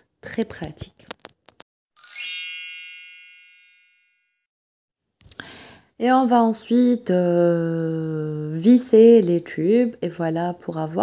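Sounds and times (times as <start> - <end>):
bell-like ding: 2.0 - 4.4.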